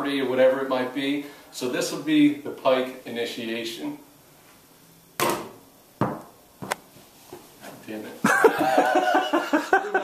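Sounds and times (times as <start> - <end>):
ball knocking on hoop: 5.2 - 6.8.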